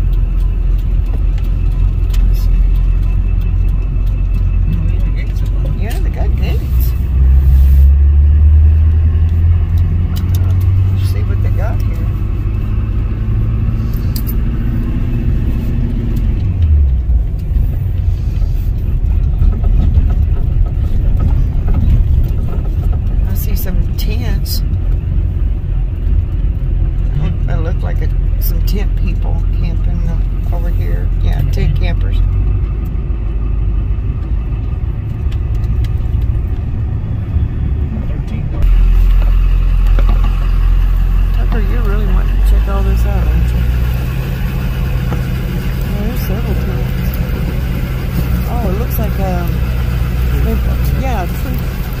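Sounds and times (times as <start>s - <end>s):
car engine and tyres rumbling: 0.0s - 52.0s.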